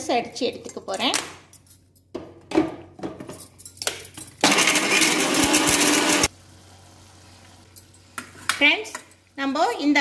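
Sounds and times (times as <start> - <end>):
electric mixer grinder running: 4.4 - 6.3.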